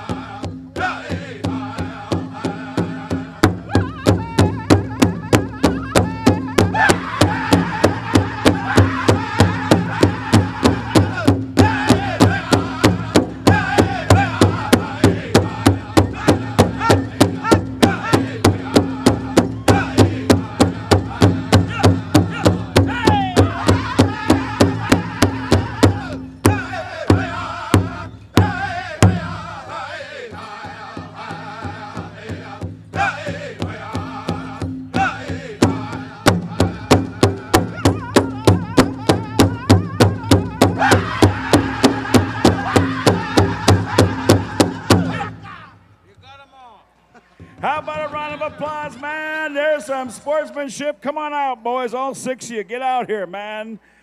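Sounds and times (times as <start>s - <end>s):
large drum beating: 0.0s - 29.5s, 30.3s - 45.5s
group singing in high voices: 0.0s - 45.5s.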